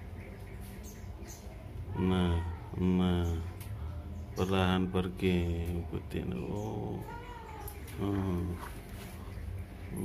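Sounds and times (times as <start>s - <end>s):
cat yowling: 7.0s - 7.8s.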